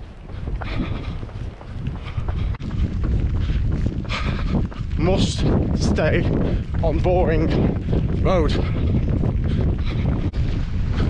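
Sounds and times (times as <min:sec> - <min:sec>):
running footsteps: 0:00.0 - 0:11.0
wind buffeting microphone: 0:00.0 - 0:11.0.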